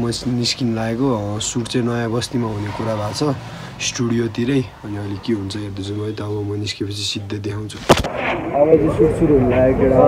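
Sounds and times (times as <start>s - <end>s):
man talking: 0.0s - 7.9s, 8.5s - 10.0s.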